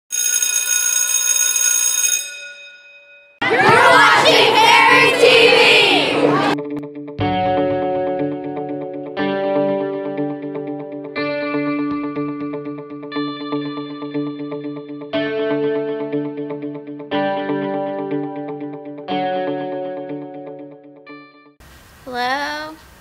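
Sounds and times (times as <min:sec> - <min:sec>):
bright ringing tone: 0:00.1 - 0:03.4
kids shouting and cheering: 0:03.4 - 0:06.6
electric guitar chords: 0:06.2 - 0:21.5.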